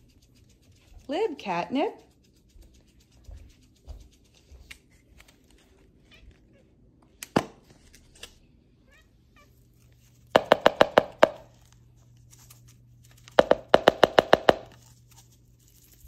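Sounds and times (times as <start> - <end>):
catnip container shaken: 0.0 - 6.4, 9.7 - 16.0.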